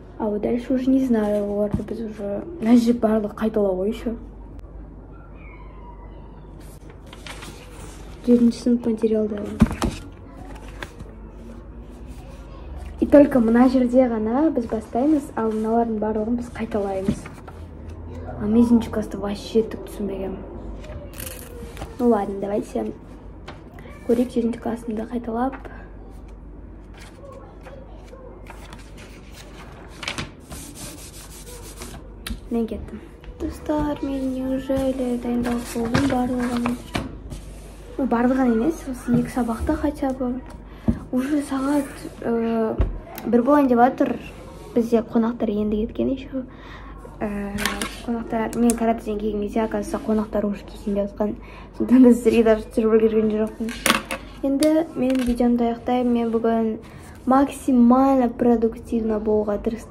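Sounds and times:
book pages riffling: 0:06.6 - 0:08.5, 0:09.4 - 0:11.4, 0:26.8 - 0:32.4.

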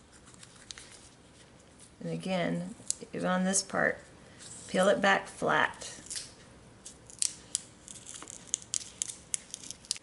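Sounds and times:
vinyl foil peeling crackles: 0:07.2 - 0:10.0.

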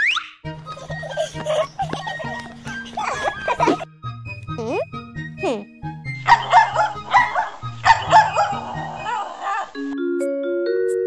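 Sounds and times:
children's background music: 0:00.0 - 0:11.0
cartoon puppy barking: 0:06.2 - 0:09.8.

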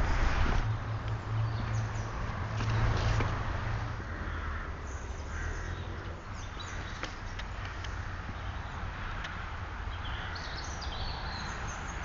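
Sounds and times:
steady low rumble: 0:00.0 - 0:05.4
crow cawing: 0:04.0 - 0:05.9.

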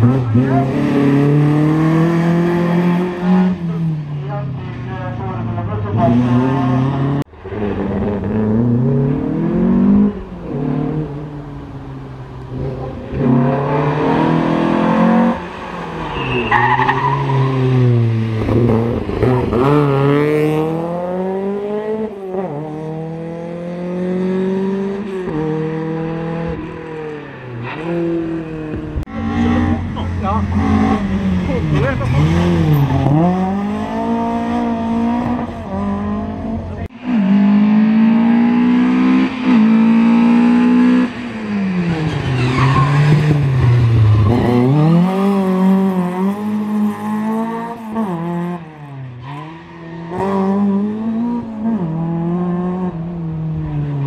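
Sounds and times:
rally car engines revving: 0:00.0 - 0:54.0
tyre squeal: 0:16.0 - 0:17.9, 0:42.0 - 0:43.4.

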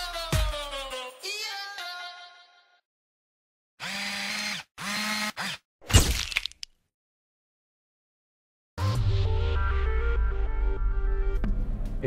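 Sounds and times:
small electric motor whirring: 0:03.8 - 0:05.6.

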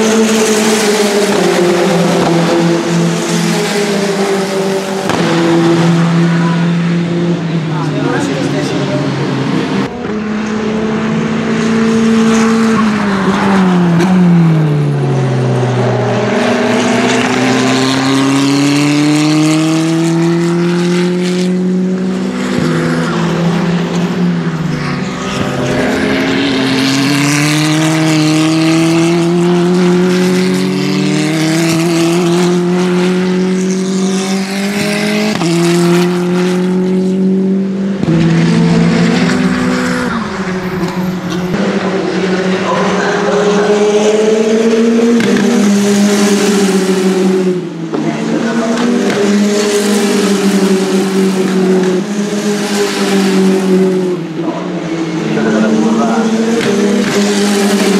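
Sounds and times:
race cars accelerating past: 0:00.0 - 0:57.9.

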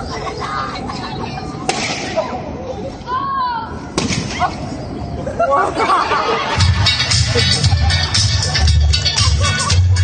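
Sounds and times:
outdoor crowd chatter: 0:00.0 - 0:10.0
sharp crack: 0:01.7 - 0:02.3, 0:04.0 - 0:04.5.

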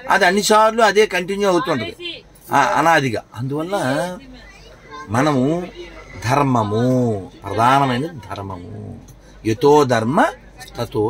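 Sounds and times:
man talking: 0:02.5 - 0:04.2, 0:05.1 - 0:11.0.

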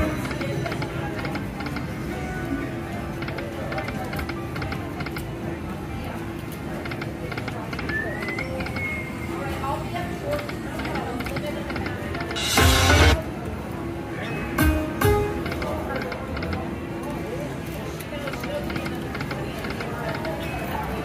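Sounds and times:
slot machine reels clicking: 0:10.4 - 0:13.2
slot machine game music: 0:12.4 - 0:13.2.

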